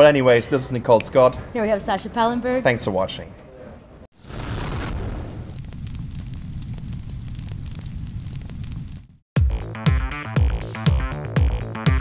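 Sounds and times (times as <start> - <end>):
fire crackles: 4.2 - 9.2
low rumble of flames: 4.2 - 9.2.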